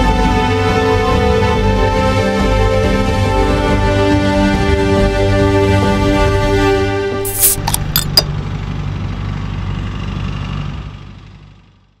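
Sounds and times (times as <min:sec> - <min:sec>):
tractor engine running: 0:07.3 - 0:11.7.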